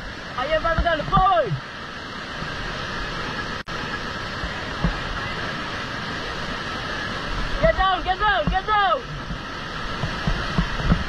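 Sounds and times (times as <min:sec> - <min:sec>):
whitewater rapids rushing: 0:00.0 - 0:11.0.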